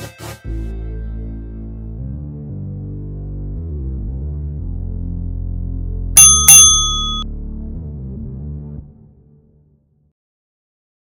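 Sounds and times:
interval timer bell dings: 6.2 - 7.2.

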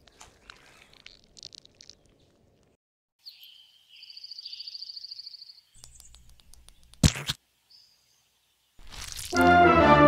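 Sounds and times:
bird chirping and trilling: 3.2 - 7.0.

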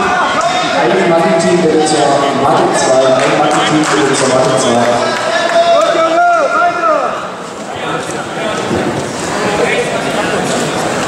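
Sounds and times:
man announcing over loudspeaker: 0.0 - 8.6
chatter: 0.0 - 11.0.

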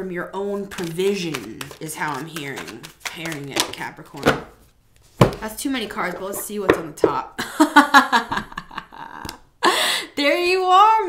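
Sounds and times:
woman laughing: 7.4 - 10.0.

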